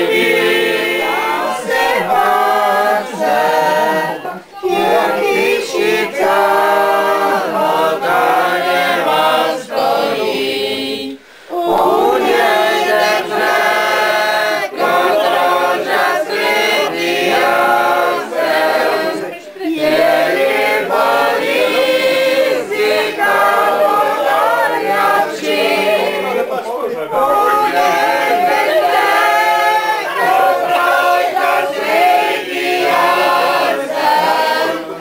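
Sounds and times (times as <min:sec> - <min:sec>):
group of voices singing: 0:00.0 - 0:35.0.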